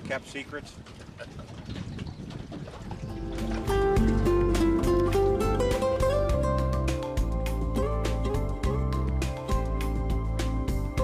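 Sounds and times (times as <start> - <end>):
instrumental background music: 3.0 - 11.0.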